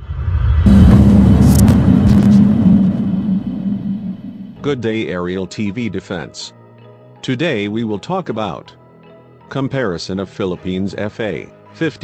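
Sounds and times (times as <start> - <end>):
loud deep rumble: 0.0 - 4.8
steady hum: 0.7 - 4.8.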